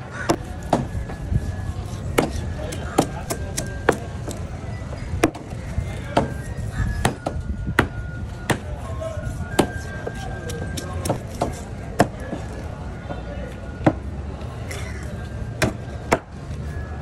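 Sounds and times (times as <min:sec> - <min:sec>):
knife chopping fish on wooden board: 0:02.1 - 0:04.4, 0:06.2 - 0:06.4, 0:09.6 - 0:12.2.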